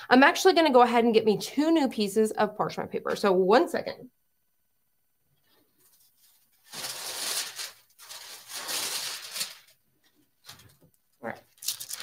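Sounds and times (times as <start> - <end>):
paper rustling: 5.4 - 12.0.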